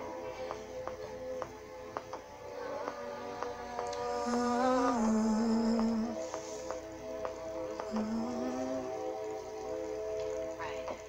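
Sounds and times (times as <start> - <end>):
woman humming: 4.1 - 6.2, 7.9 - 9.1.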